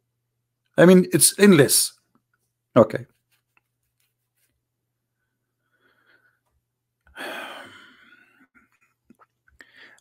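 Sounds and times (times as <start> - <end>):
man sighing: 7.1 - 8.4.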